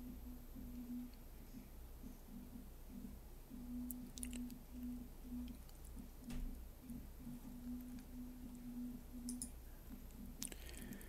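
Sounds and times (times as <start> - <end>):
low steady hum: 0.0 - 11.0
computer mouse clicks: 9.2 - 9.6.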